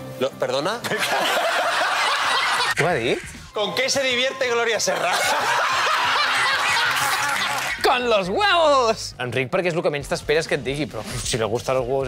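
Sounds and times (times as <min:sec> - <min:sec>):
crowd laughing loudly: 0:00.8 - 0:03.0, 0:04.5 - 0:07.8
overlapping voices: 0:04.9 - 0:07.9.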